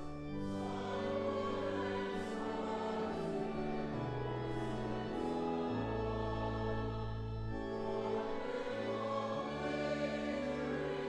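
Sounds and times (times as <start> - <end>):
congregation singing a hymn: 0.0 - 11.0
organ chords: 0.0 - 11.0.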